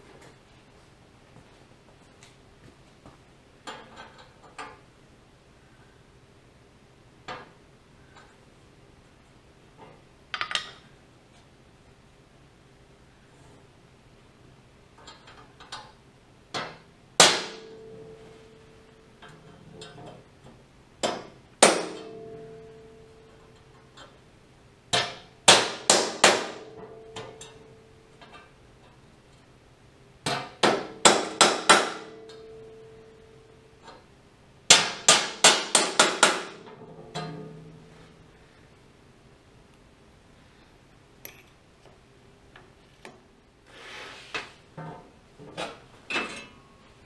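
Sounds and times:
hammer tapping metal punch: 0:30.2 - 0:32.8, 0:34.7 - 0:37.6.

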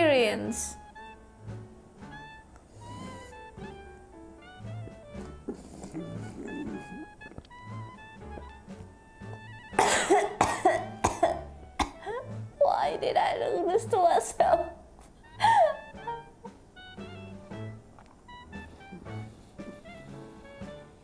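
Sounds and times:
light background music: 0:00.0 - 0:21.0
woman coughing and sputtering: 0:09.8 - 0:12.1
woman crying out: 0:15.4 - 0:16.6.

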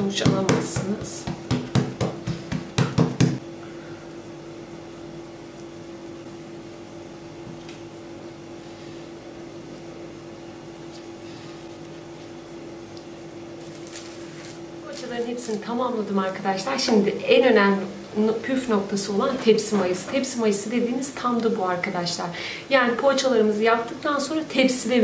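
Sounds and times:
speech: 0:00.0 - 0:01.3, 0:14.8 - 0:25.0.

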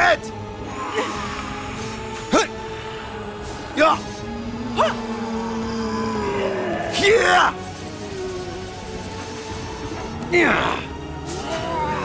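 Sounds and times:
low sustained soundtrack music: 0:00.0 - 0:12.0.

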